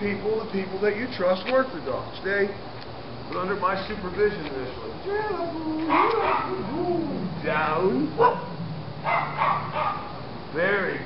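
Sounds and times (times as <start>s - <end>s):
dog barking: 5.9s - 6.7s, 8.2s - 10.2s.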